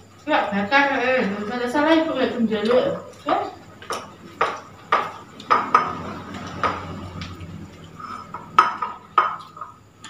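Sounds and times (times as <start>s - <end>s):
plates clinking and scraping: 3.8s - 9.8s.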